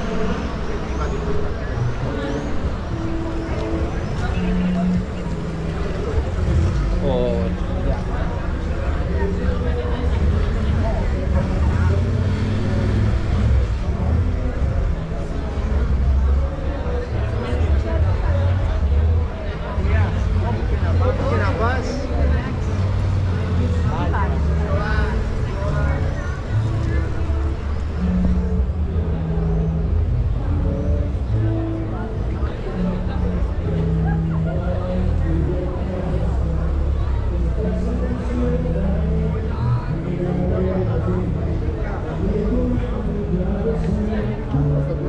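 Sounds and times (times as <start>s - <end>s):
passerby's voice: 0.0s - 45.0s
traffic rumble: 0.0s - 45.0s.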